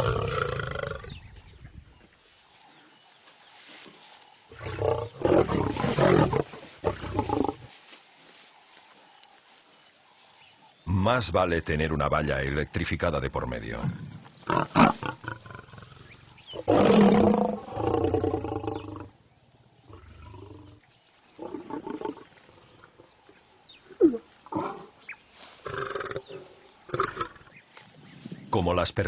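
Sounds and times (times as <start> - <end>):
lion calling: 13.8 - 19.1.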